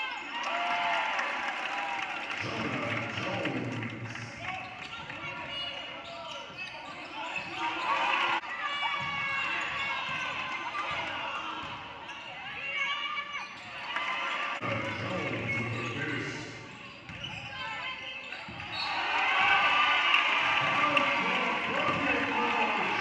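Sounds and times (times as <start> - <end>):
ball bouncing on wooden court: 8.8 - 11.8, 16.9 - 17.7, 21.8 - 22.3.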